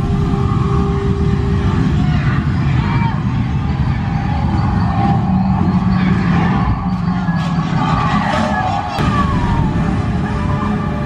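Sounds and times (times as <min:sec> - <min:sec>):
low rumble of flight effects: 0:00.0 - 0:11.0
music: 0:00.0 - 0:11.0.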